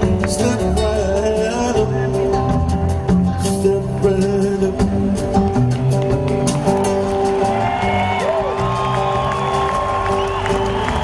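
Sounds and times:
live band playing instrumental: 0.0 - 11.0
audience cheering and whooping: 6.5 - 11.0.

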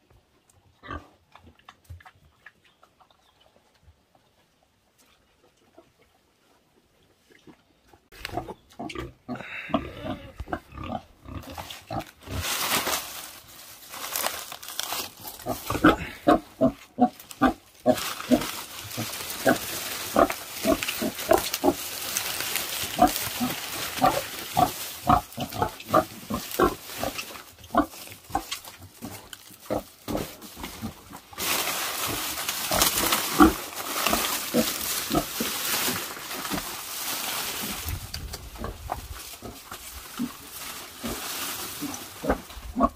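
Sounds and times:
pigs grunting and squealing: 8.2 - 12.4, 15.4 - 31.2, 38.4 - 42.9
dry leaves rustling: 9.4 - 42.9.

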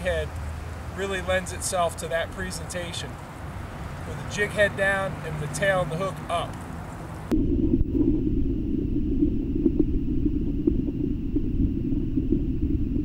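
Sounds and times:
muffled underwater river rumble: 7.3 - 13.0.

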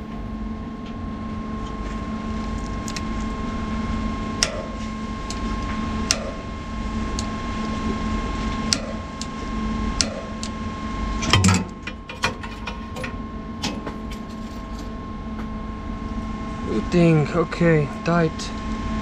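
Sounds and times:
steady hum: 0.0 - 19.0.

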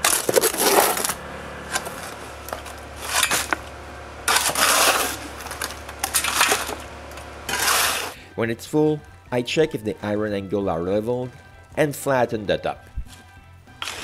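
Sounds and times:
shovel scraping concrete in wheelbarrow: 0.0 - 8.2, 13.8 - 14.0.

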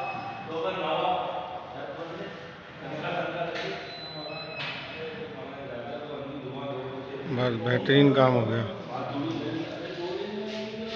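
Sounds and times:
men talking in background: 0.0 - 10.9.

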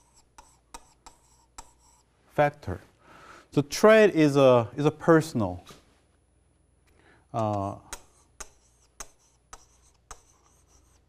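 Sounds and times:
pen tip rubbing on screen: 0.0 - 2.1, 7.5 - 11.0.

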